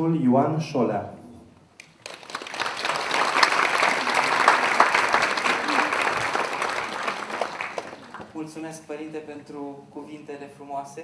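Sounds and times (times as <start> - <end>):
audience applauding: 1.8 - 8.4.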